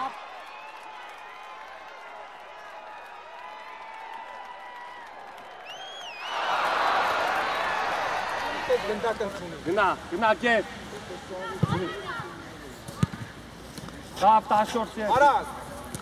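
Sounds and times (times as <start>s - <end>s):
crowd shouting and cheering: 0.0s - 9.9s.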